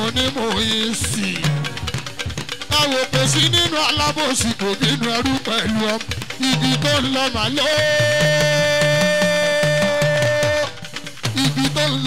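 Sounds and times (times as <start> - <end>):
drums sliding down in pitch: 1.2 - 3.6.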